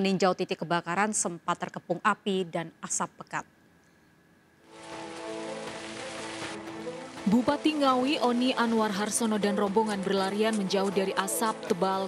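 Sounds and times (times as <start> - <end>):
rain-like hiss: 4.6 - 11.6
background music with held tones: 4.6 - 12.0.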